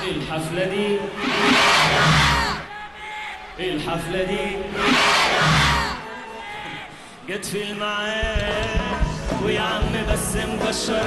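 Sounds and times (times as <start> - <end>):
crowd cheering and shouting: 0.0 - 8.0
band music: 8.2 - 11.0.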